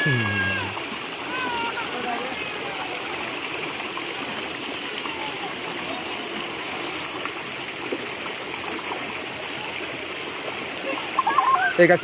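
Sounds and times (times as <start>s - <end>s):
stream flowing over stones: 0.0s - 12.0s.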